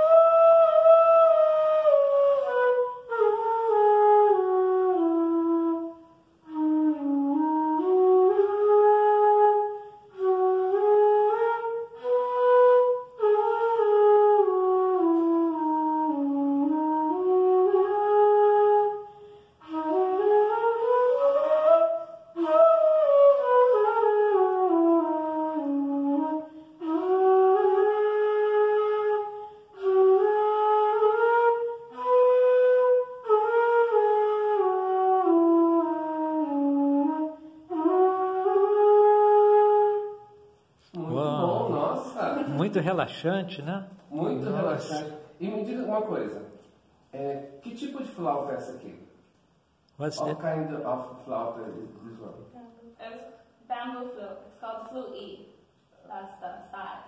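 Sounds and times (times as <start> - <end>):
bamboo flute melody: 0.0 - 42.7.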